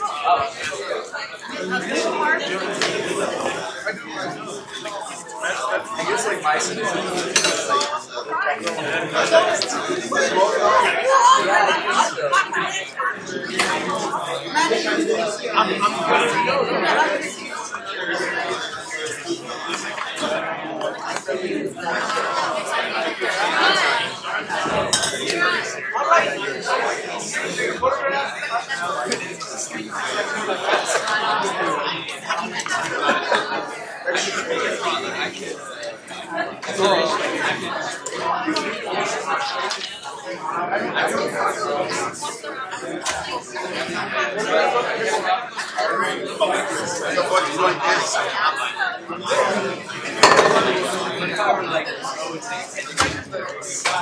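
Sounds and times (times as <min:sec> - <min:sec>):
crowd chatter: 0:00.0 - 0:54.0
people talking at once: 0:00.0 - 0:54.0.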